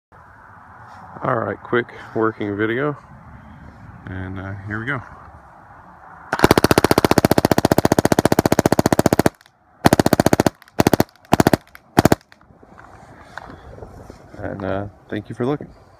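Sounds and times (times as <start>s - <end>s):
paintball marker firing bursts: 6.3s - 12.4s.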